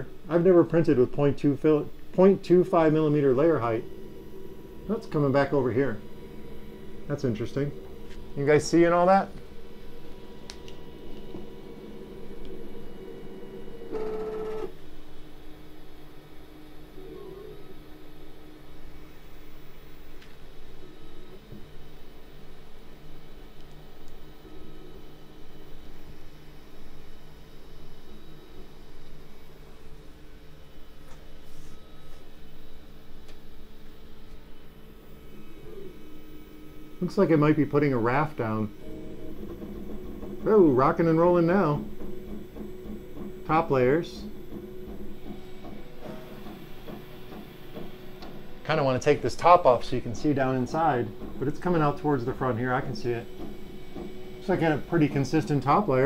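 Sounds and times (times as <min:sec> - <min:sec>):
stepper motors whining: 0:00.0 - 0:18.6, 0:34.1 - 0:56.0.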